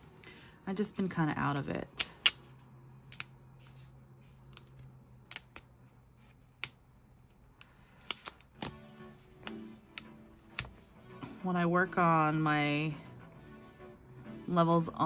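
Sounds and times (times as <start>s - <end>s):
quiet background music: 0.0s - 15.0s.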